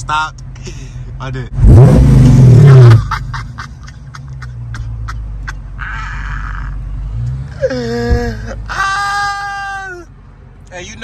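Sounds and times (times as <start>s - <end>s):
car engine revving and idling: 0.0s - 11.0s.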